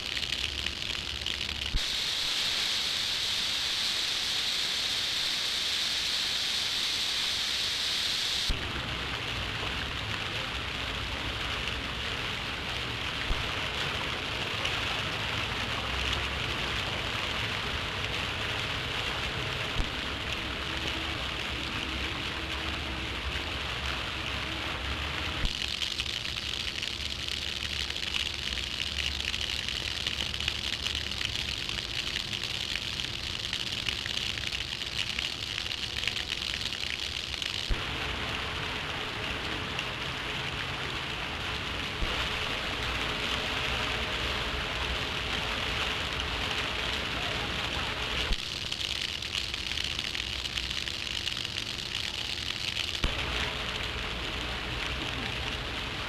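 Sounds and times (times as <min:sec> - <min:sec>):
crackles and clicks: 0:00.0 - 0:56.0
steady hiss: 0:00.0 - 0:56.0.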